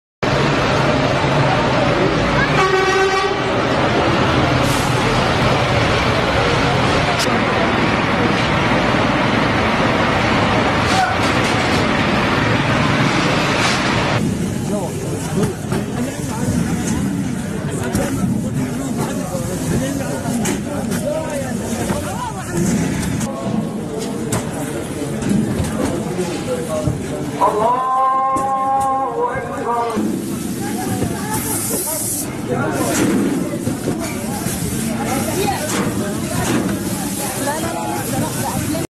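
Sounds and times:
hubbub of voices: 0.2s - 38.9s
street noise with engines: 0.2s - 38.9s
vehicle horn blast: 2.5s - 3.6s.

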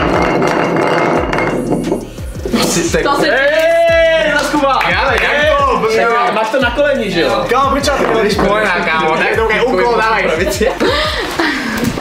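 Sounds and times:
glass bottle spinning on tile: 0.0s - 2.9s, 7.8s - 9.6s.

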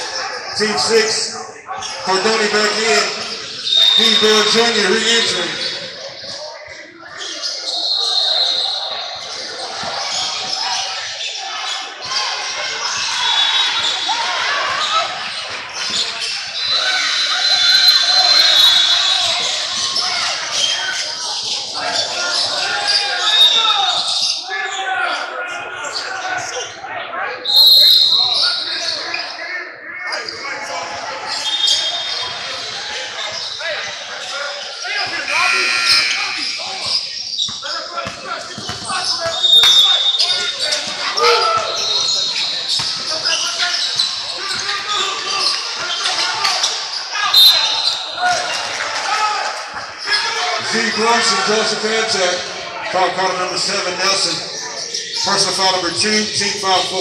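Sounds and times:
shoe squeals: 0.0s - 25.2s, 27.4s - 29.5s, 30.1s - 52.6s, 53.2s - 57.0s
players and spectators voices: 0.0s - 57.0s.

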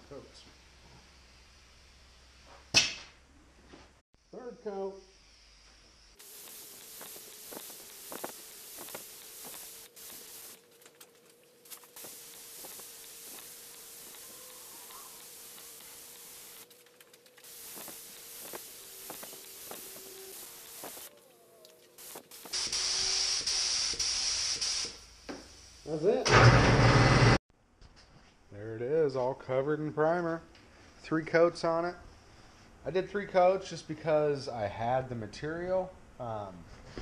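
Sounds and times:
paint spray gun hissing: 4.7s - 21.2s, 21.8s - 26.3s.

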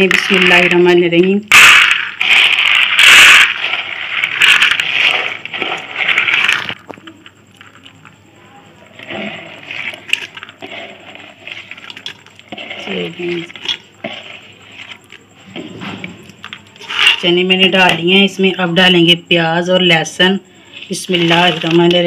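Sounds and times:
chickpeas rattling into metal pot: 0.0s - 7.0s, 9.0s - 15.2s, 16.4s - 17.4s, 20.8s - 22.0s.

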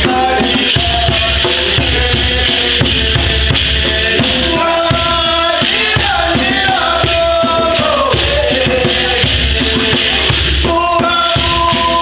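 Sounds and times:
group singing: 0.0s - 12.0s
steady drumbeat: 0.0s - 12.0s.

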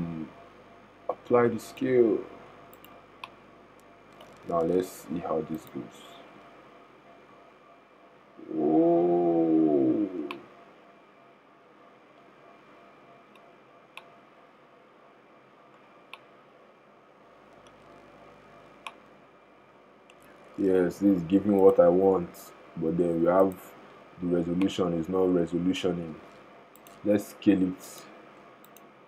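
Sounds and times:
man humming: 8.4s - 10.4s.

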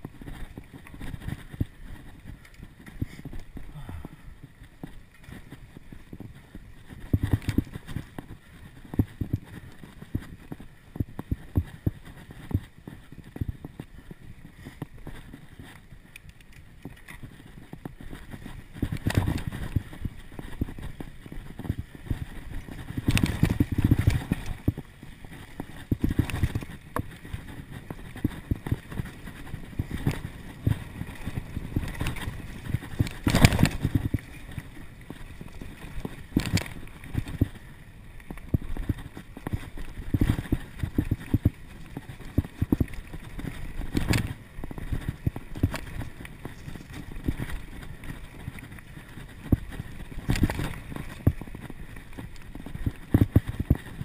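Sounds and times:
bike rattling over bumps: 0.0s - 54.0s.

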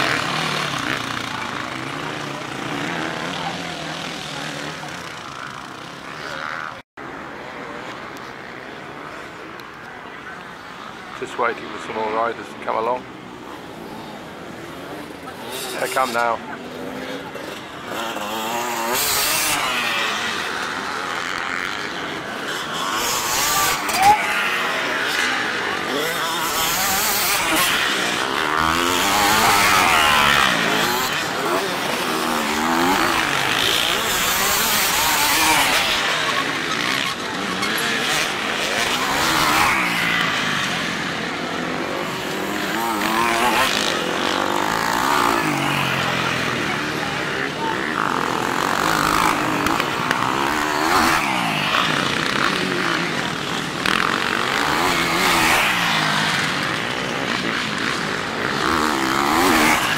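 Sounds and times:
motorcycles revving: 0.0s - 59.9s.

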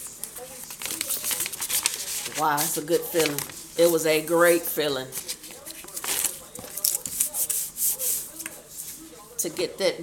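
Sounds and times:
paper being folded and creased: 0.4s - 4.0s, 5.2s - 8.4s.

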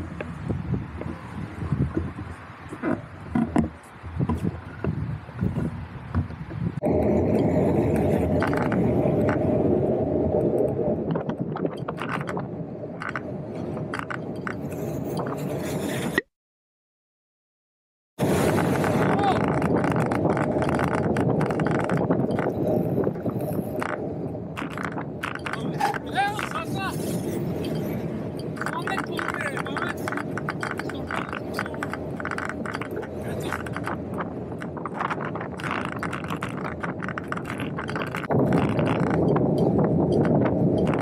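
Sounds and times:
bicycle tyre noise: 0.0s - 16.2s, 18.2s - 41.0s
wind rushing over microphone: 0.0s - 16.2s, 18.2s - 41.0s
traffic: 0.0s - 16.3s, 18.2s - 41.0s.

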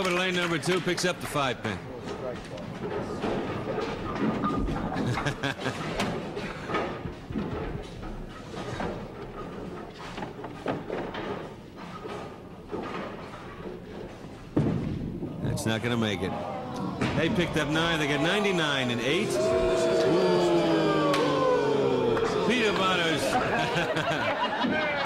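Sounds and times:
bowling ball thump and roll: 5.8s - 15.5s, 17.0s - 17.6s
background chatter: 15.5s - 25.0s.

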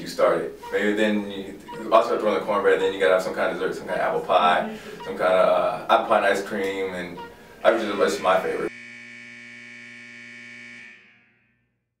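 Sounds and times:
game clock buzzer: 8.7s - 11.4s.

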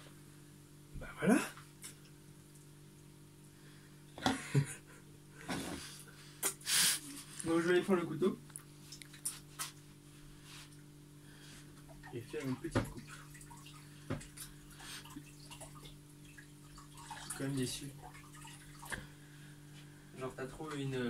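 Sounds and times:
water splashing in sink: 11.8s - 19.2s.

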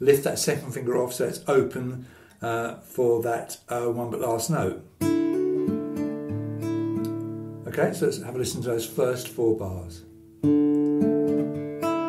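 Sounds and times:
fingerpicked nylon-string guitar: 4.5s - 12.0s.

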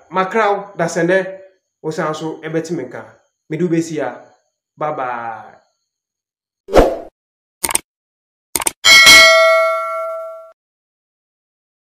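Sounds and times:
notification bell ding: 8.9s - 10.6s.

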